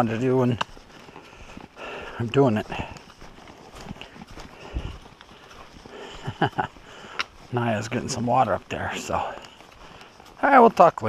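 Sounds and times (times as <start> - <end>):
footsteps on dirt trail: 0.0 - 11.0
gear and clothing rustling: 0.0 - 11.0.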